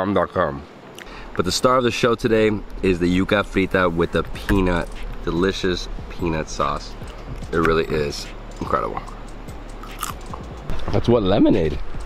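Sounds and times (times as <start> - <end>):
soft mouth clicks: 0.9 - 1.2, 7.0 - 7.4, 9.0 - 10.4
background music: 1.7 - 12.0
person chewing food: 9.8 - 10.4.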